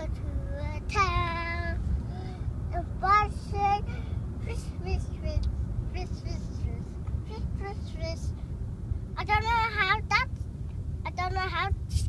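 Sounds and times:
young child singing: 0.0 - 1.8, 2.7 - 3.9, 4.5 - 8.4, 9.2 - 10.3, 11.0 - 12.0
road rumble inside car: 0.0 - 12.0.

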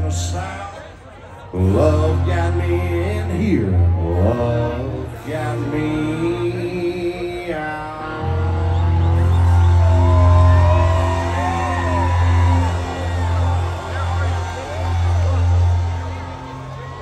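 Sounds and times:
live country band: 0.0 - 17.0
crowd shouting: 7.9 - 17.0.

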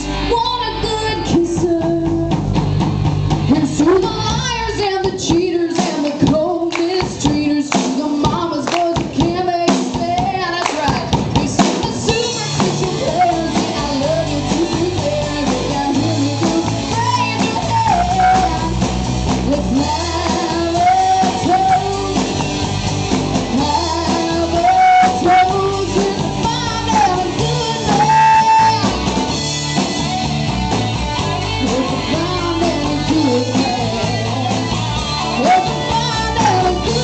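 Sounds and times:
woman singing: 0.0 - 2.6, 3.5 - 22.6, 23.4 - 29.3, 31.2 - 37.0
country-rock band playing: 0.0 - 37.0
drums: 0.0 - 37.0
electric guitar: 0.0 - 37.0
acoustic guitar: 12.0 - 37.0.

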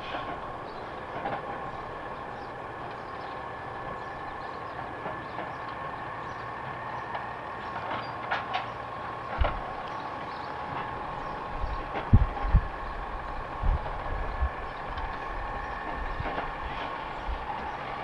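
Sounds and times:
garbage truck rumble: 0.0 - 18.0.

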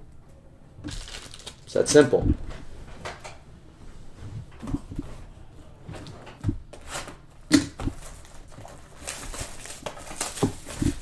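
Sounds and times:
cardboard rustling and scraping: 3.9 - 11.0.

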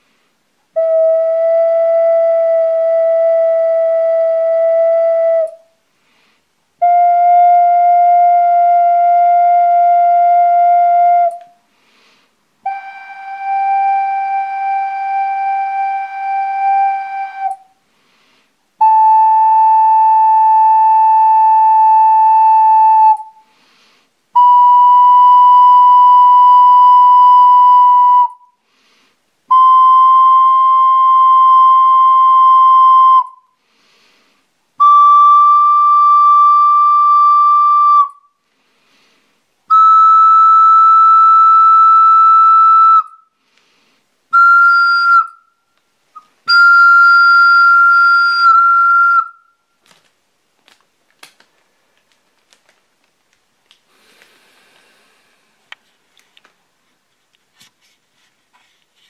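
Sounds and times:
ocarina playing held notes: 0.8 - 5.7, 6.8 - 11.6, 12.6 - 17.7, 18.8 - 23.4, 24.4 - 28.5, 29.5 - 33.4, 34.8 - 38.2, 39.7 - 43.2, 44.3 - 45.4, 46.1 - 49.6.

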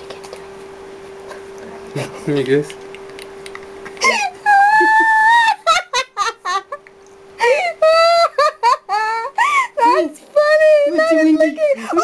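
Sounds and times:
woman squealing laughter: 4.0 - 6.8, 7.4 - 9.7.

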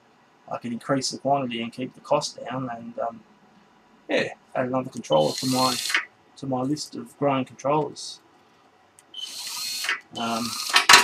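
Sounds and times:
small motor whirring: 5.1 - 6.1, 9.1 - 11.0.

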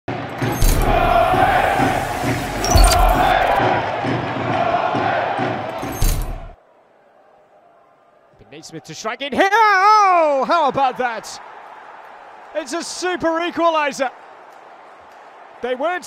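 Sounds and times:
stadium crowd roaring and chanting: 0.1 - 8.6
sharp hits: 0.5 - 3.6.

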